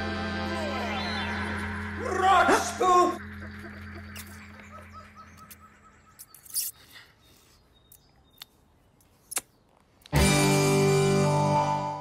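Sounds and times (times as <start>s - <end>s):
music: 0.0s - 3.5s, 10.1s - 12.0s
bird twittering: 2.8s - 8.6s.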